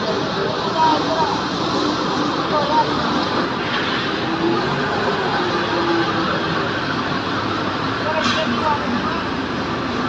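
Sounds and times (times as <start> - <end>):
diesel forklift engine running: 0.0 - 10.0.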